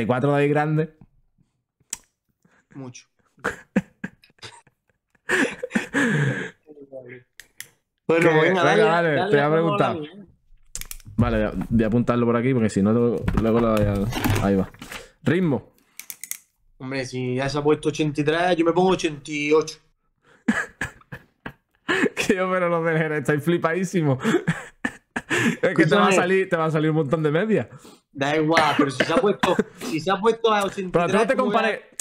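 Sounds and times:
men laughing: 3.2s - 6.7s, 20.3s - 22.4s, 24.1s - 26.4s, 28.6s - 30.0s.

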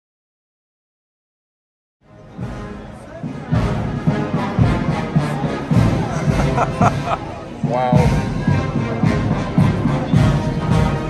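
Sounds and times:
crowd chatter: 2.0s - 11.0s
brass band playing a march: 2.1s - 11.0s
bass drum beat: 2.4s - 11.0s.

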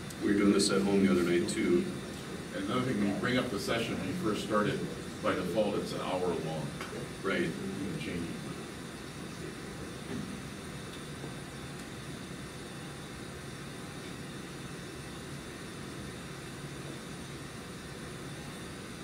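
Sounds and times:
ventilation hum and hiss: 0.0s - 19.0s.

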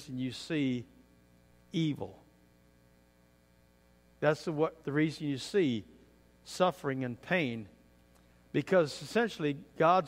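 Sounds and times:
man speaking: 0.0s - 1.0s, 1.7s - 2.3s, 4.2s - 7.8s, 8.5s - 10.0s
electrical mains hum: 0.0s - 10.0s.

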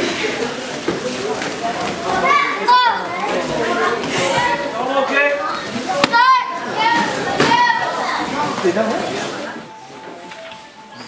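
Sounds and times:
children shouting: 2.0s - 8.6s.

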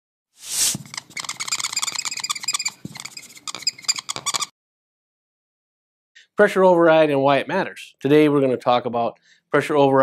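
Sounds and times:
marker squeaking on whiteboard: 0.4s - 4.6s.

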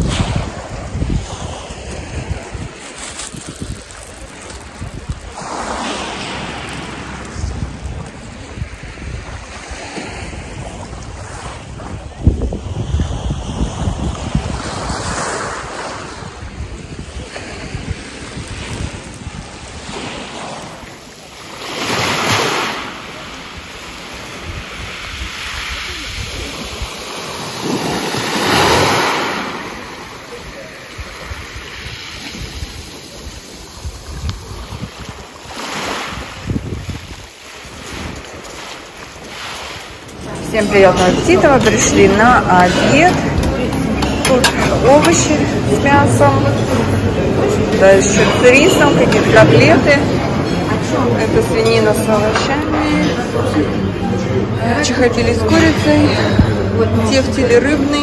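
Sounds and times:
wind rumble on microphone: 0.0s - 22.6s, 23.4s - 53.0s, 54.7s - 58.0s
waves over pebble beach: 0.0s - 53.6s.

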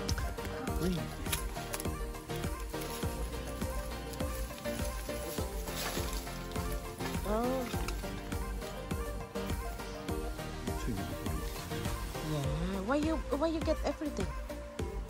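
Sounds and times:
foliage and soil rustling: 0.0s - 13.0s
background music: 0.0s - 15.0s.

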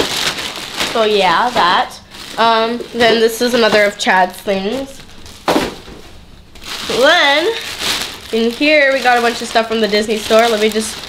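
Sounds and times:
plastic bags rustling: 0.0s - 11.0s.

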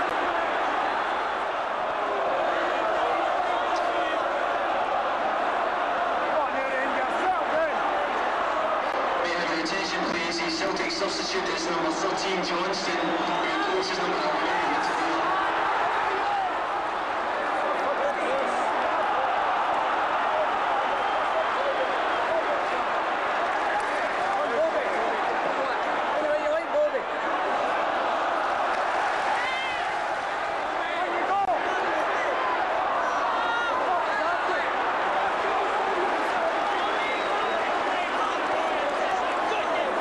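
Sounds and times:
stadium crowd din: 0.0s - 40.0s.

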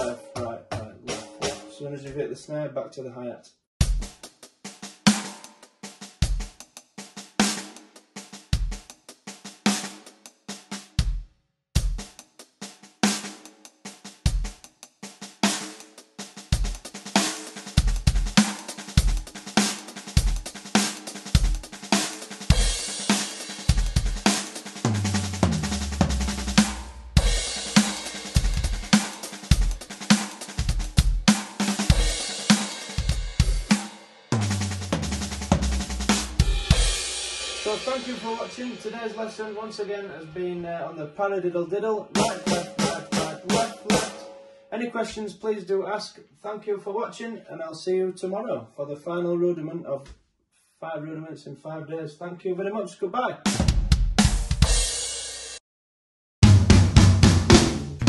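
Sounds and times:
snare drum: 3.8s - 11.2s, 11.8s - 39.6s, 42.2s - 44.3s, 53.5s - 55.6s, 56.4s - 58.0s
hi-hat: 15.6s - 34.0s
cymbal: 21.9s - 24.8s, 26.1s - 30.6s, 31.3s - 34.4s, 35.6s - 39.8s, 42.2s - 44.5s
bass drum kicking: 24.9s - 28.9s, 56.4s - 58.0s
falling low drum notes: 34.4s - 36.8s, 56.4s - 58.0s.

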